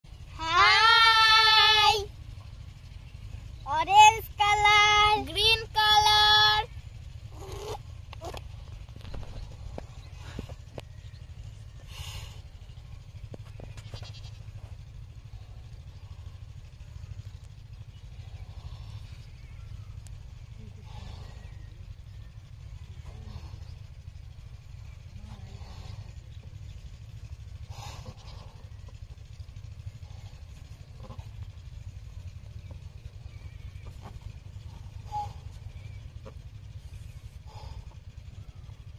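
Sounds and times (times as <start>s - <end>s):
low steady rumble: 0.0s - 38.9s.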